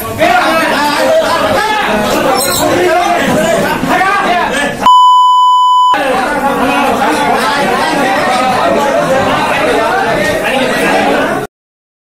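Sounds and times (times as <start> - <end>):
men's raised voices: 0.0 - 4.8
censor bleep: 4.9 - 6.0.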